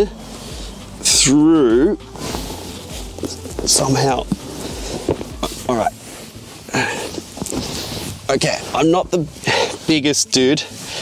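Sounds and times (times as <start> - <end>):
clothes rustling: 0.0 - 11.0
body sliding onto car seat: 2.1 - 10.0.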